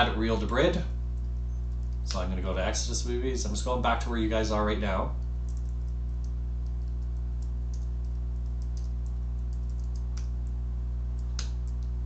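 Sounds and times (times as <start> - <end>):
low electrical hum: 0.0 - 12.0
computer keyboard clicks: 5.4 - 10.6, 11.2 - 12.0.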